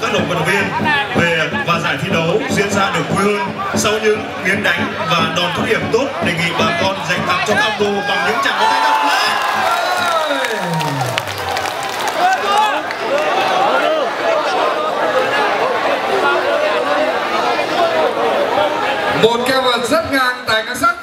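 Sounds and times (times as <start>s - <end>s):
crowd shouting and cheering: 0.0s - 21.0s
long falling cry: 8.6s - 12.6s.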